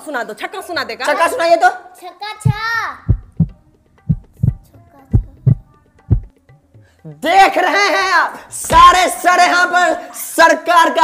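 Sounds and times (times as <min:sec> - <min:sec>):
heartbeat double thumps: 0:02.5 - 0:06.3.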